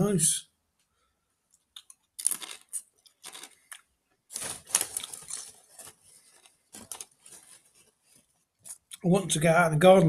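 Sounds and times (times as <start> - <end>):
tortilla chip crunching: 1.8 - 7.9.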